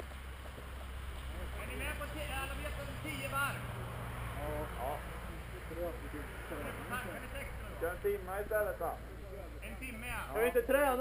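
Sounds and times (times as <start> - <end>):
voices talking and calling out: 0.6 - 11.0.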